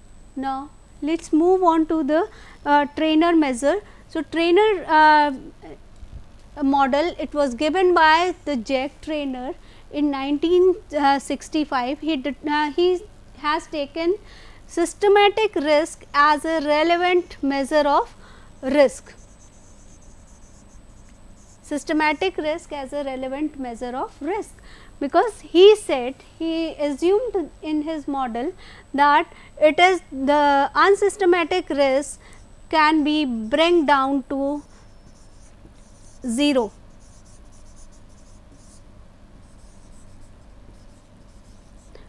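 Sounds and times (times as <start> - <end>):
faint steady hiss: 0.0 - 42.0
low steady hum: 0.0 - 42.0
high rapid faint pulsing: 13.6 - 29.0
stylus scratching on tablet: 14.7 - 25.4, 32.8 - 42.0.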